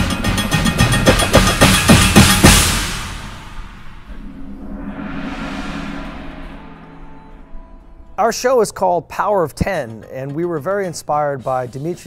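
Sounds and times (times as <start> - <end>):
drum corps playing: 0.0 - 2.8
cymbal swell: 2.7 - 8.2
held low note: 3.8 - 8.4.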